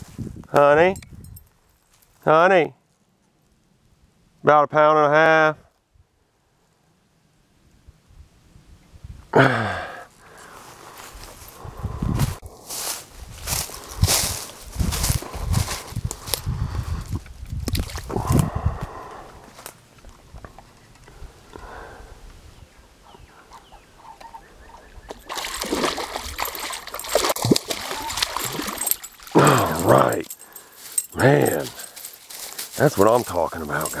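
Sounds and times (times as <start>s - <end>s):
footsteps crunching dry leaves: 10.2s - 11.6s, 12.2s - 17.1s, 25.3s - 34.0s
fish thrashing and splashing: 25.1s - 29.6s.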